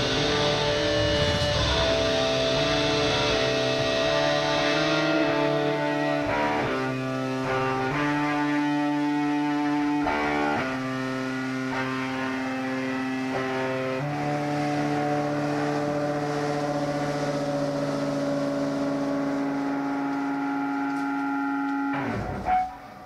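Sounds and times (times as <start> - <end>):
rock band sustained chords: 0.0 - 23.0.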